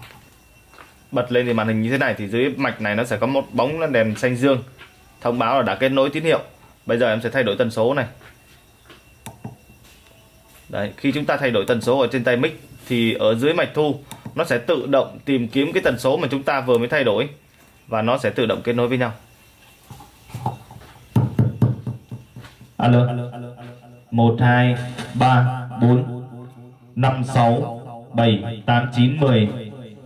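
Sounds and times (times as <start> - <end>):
microphone handling knocks: 20.3 - 22.7.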